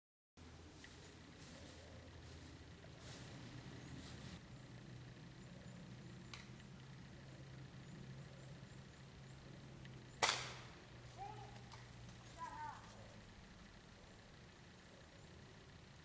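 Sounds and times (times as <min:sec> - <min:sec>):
air rifle firing: 0:10.2 - 0:10.8.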